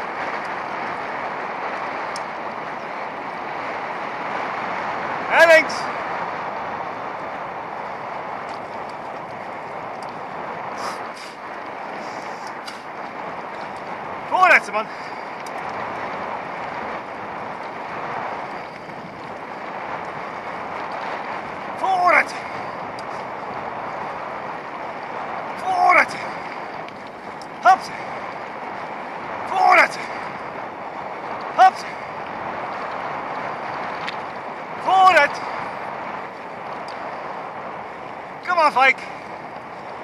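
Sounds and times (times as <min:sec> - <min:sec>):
bicycle tyres on dirt track: 0:00.0 - 0:40.0
wind noise: 0:00.0 - 0:40.0
man shouting short calls: 0:05.3 - 0:05.9, 0:14.3 - 0:15.0, 0:21.8 - 0:22.4, 0:25.6 - 0:26.3, 0:27.6 - 0:28.1, 0:29.5 - 0:30.2, 0:31.5 - 0:32.0, 0:34.8 - 0:35.5, 0:38.4 - 0:39.0.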